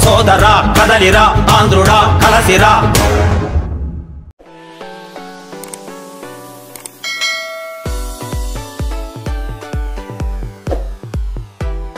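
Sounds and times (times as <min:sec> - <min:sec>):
music: 0:00.0 - 0:11.9
click: 0:05.6 - 0:05.9, 0:06.7 - 0:07.0
notification bell ding: 0:07.0 - 0:08.5
electronic dance music with bass beat: 0:07.9 - 0:11.9.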